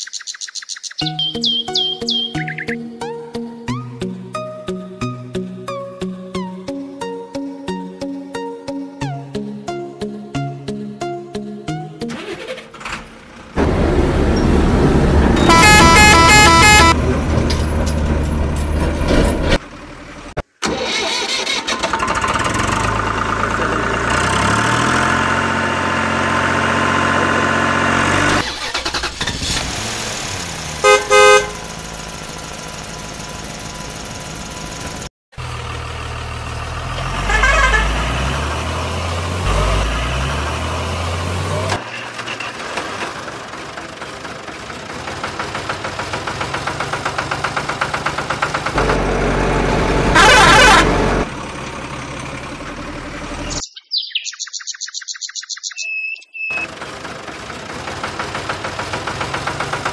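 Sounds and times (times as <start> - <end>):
truck engine revving: 12.0 - 53.6, 56.5 - 59.9
horn beeps: 15.4 - 17.0, 37.2 - 38.0, 50.1 - 51.0.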